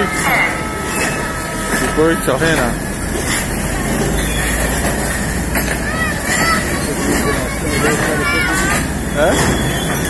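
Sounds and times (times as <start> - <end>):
faint voices: 0.0 - 10.0
freight train rumbling past: 0.0 - 10.0
train wheels clacking: 0.0 - 10.0.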